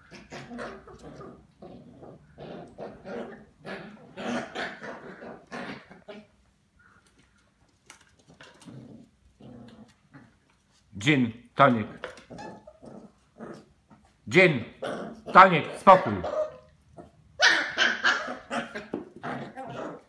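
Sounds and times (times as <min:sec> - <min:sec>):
small dogs growling: 0:00.0 - 0:06.4, 0:08.2 - 0:10.7, 0:11.8 - 0:20.0.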